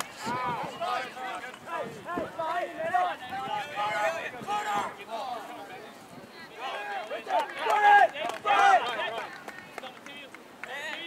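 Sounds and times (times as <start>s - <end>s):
people shouting: 0.2s - 5.0s, 6.6s - 9.2s.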